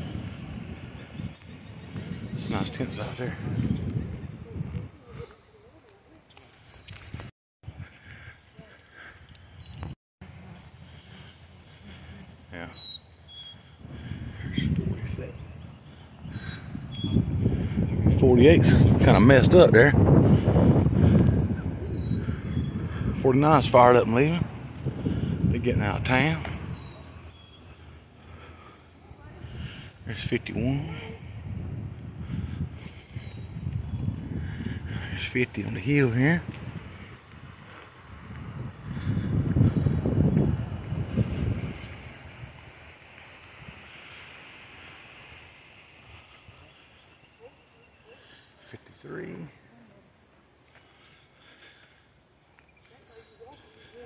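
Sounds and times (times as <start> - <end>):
wind buffeting microphone: 0.0 - 54.0
high bird chirps: 12.4 - 13.8.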